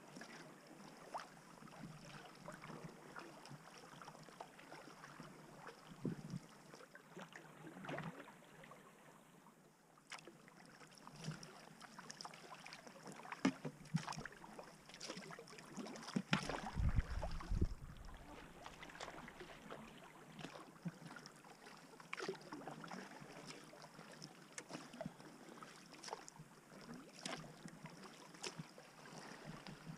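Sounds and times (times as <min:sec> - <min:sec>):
paddle splashing in water: 0:00.1 - 0:08.8, 0:10.1 - 0:29.9
brief low rumble: 0:16.7 - 0:18.2.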